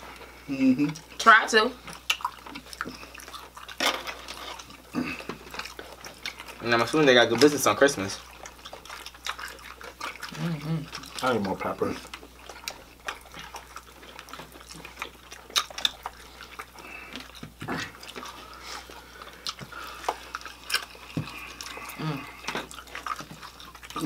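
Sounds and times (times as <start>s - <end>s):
people chewing: 0.0s - 24.0s.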